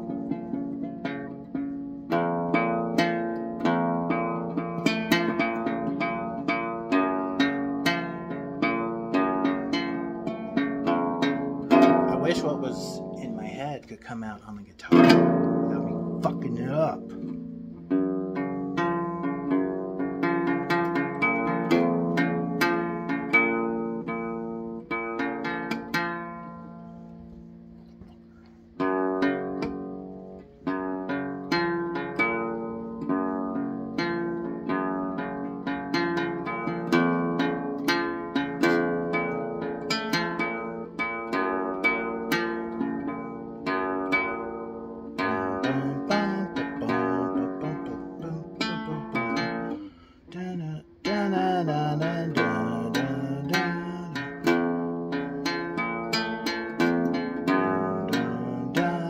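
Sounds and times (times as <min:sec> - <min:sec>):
acoustic guitar plucked notes: 0:00.0 - 0:59.0
strummed guitar chord: 0:02.1 - 0:13.8, 0:14.9 - 0:26.6, 0:28.8 - 0:59.0.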